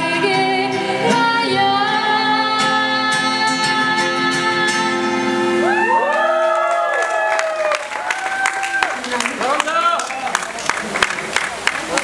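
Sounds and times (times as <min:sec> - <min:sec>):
acoustic guitar chord ringing: 0:00.0 - 0:05.8
listeners cheering: 0:05.6 - 0:10.6
people clapping: 0:05.8 - 0:12.0.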